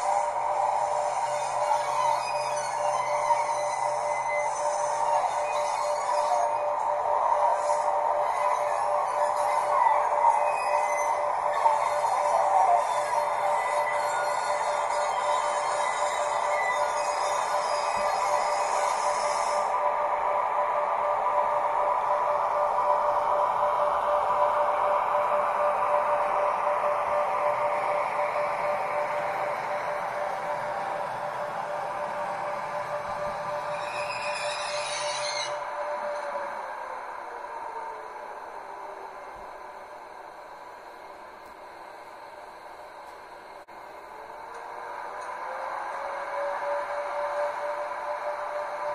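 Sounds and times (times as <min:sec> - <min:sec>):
synthesized electric train whine: 0:00.0 - 0:48.9.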